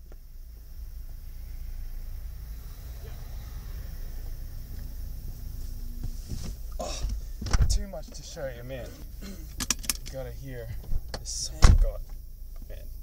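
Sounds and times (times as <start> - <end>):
car engine rumbling: 0.0 - 13.0.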